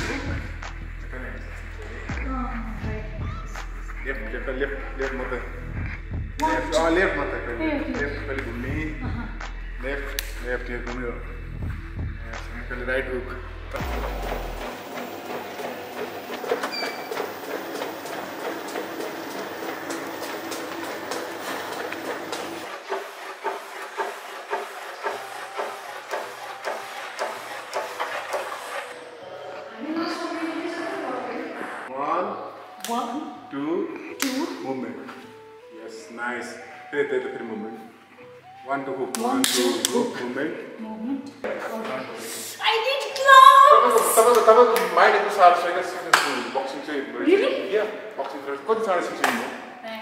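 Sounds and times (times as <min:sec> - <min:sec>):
treadmill belt and motor humming: 0:13.7 - 0:30.0.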